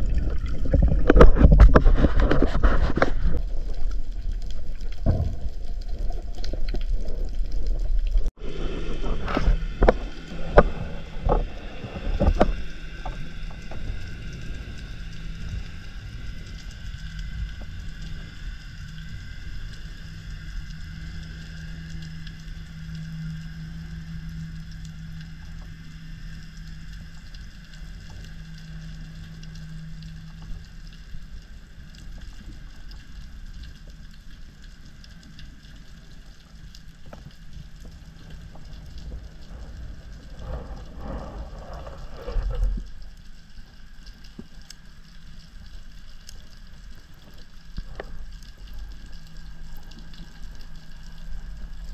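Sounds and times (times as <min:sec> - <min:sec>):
low underwater hum: 0:00.0 - 0:51.9.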